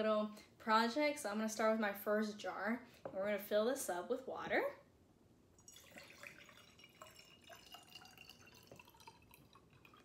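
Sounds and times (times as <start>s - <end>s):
water trickling into jar: 5.6s - 10.0s.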